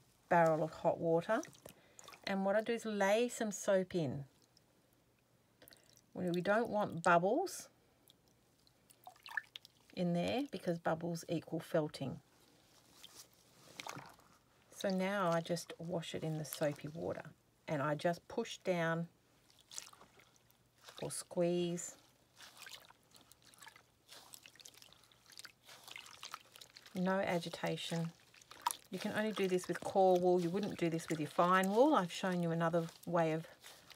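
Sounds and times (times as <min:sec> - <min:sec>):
water drips into tub: 0:01.3 - 0:02.3, 0:04.3 - 0:07.1, 0:08.0 - 0:10.0, 0:13.0 - 0:14.2, 0:19.4 - 0:21.2, 0:22.4 - 0:33.9.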